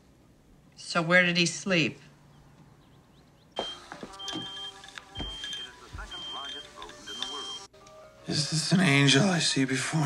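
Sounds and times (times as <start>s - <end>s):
high electronic beep: 3.6s - 7.7s
held musical tones: 3.6s - 9.1s.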